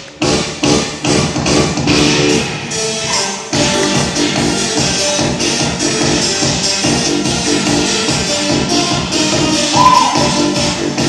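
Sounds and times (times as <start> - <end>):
upbeat pop dance music: 0.0 - 11.0.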